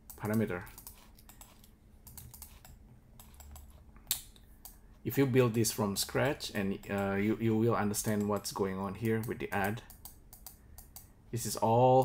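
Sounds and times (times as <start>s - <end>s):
computer keyboard typing: 0.1s - 3.8s, 8.0s - 11.1s.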